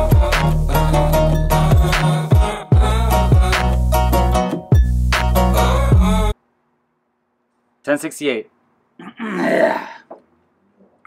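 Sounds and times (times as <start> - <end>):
man clearing his throat: 9.0 - 10.1.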